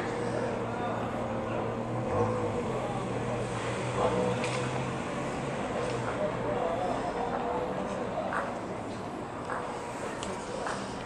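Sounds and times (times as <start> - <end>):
faint voices: 0.0 - 11.0
low traffic engine hum: 0.0 - 11.0.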